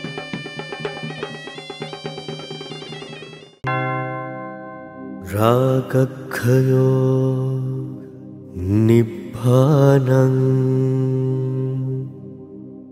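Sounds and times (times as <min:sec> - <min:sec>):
soft music: 0:00.0 - 0:12.9
man chanting: 0:05.3 - 0:12.4.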